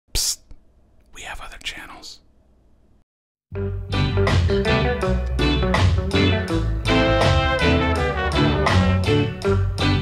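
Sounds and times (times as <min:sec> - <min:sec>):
person whispering: 0:00.1 - 0:02.3.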